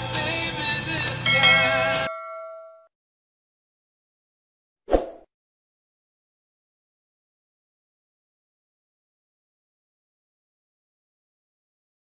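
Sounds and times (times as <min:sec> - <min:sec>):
click: 0:01.0 - 0:01.2
bell ding: 0:01.0 - 0:02.9.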